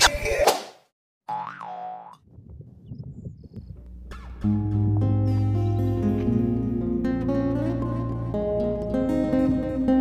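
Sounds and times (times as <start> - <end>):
cartoon boing: 1.3 - 2.2.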